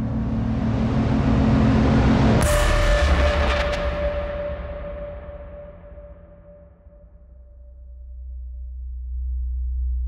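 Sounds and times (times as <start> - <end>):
held low drone: 6.0 - 10.0.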